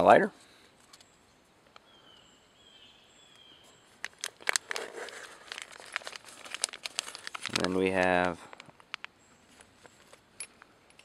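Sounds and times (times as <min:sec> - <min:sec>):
plastic bag clicks and rustles: 0:04.0 - 0:10.2.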